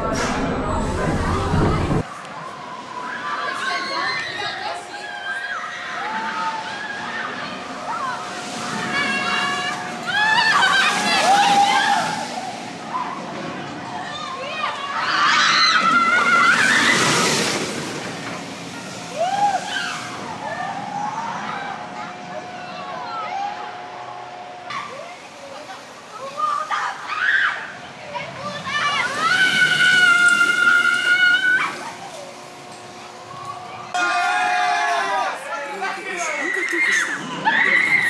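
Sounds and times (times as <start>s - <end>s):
roller coaster train rushing on track: 0.0s - 2.1s, 5.8s - 34.0s.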